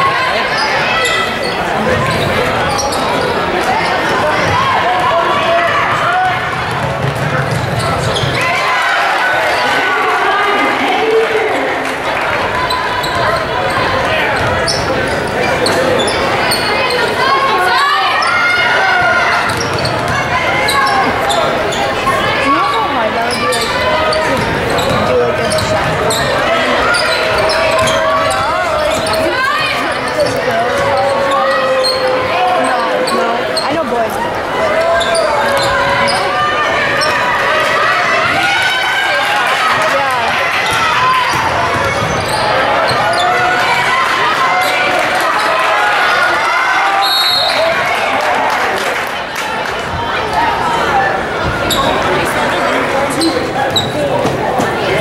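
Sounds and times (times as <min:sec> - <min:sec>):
voices calling out: 0:00.0 - 0:55.0.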